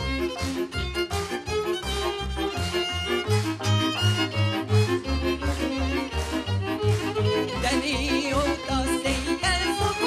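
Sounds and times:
double bass marking beat: 0:00.0 - 0:10.0
violins: 0:00.0 - 0:10.0.

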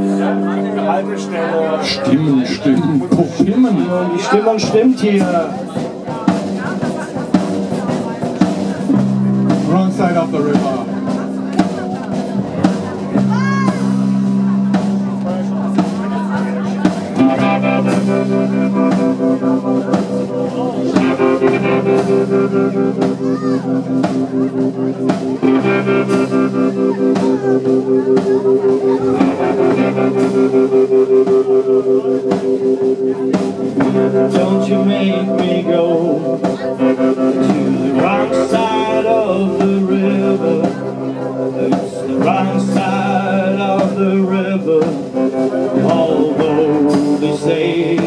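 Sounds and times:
electric guitars and bass: 0:00.0 - 0:48.0
steady drum beat: 0:00.0 - 0:48.0
lead vocal singing: 0:33.8 - 0:48.0.

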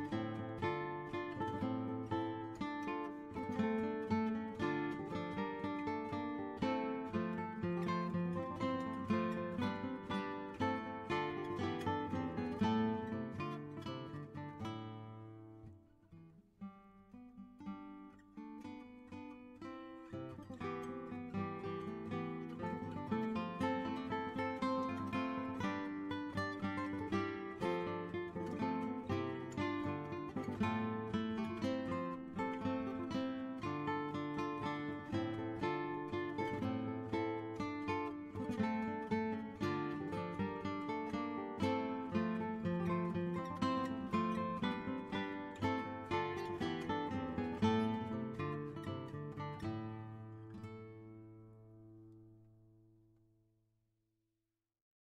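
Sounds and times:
solo plucked guitar: 0:00.0 - 0:53.1.

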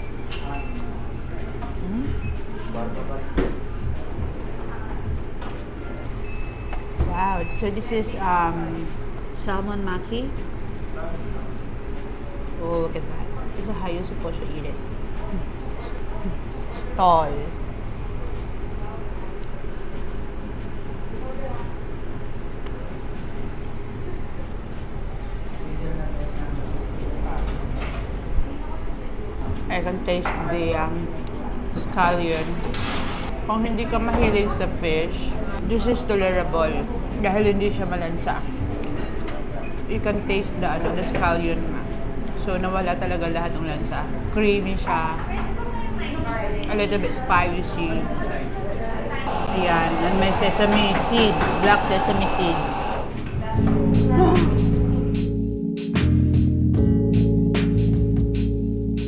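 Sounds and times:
murmur of voices: 0:00.0 - 0:55.0
low room rumble: 0:00.0 - 0:55.6
background music: 0:00.0 - 0:59.0.

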